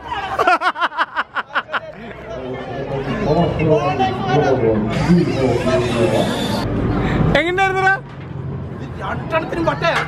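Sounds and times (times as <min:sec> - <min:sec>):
people chattering: 0:00.0 - 0:08.0, 0:08.6 - 0:10.0.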